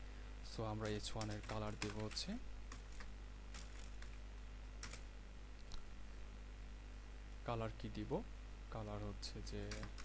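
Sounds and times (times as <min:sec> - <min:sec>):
computer keyboard keystrokes: 0:00.8 - 0:04.2, 0:04.8 - 0:05.1, 0:09.6 - 0:10.0.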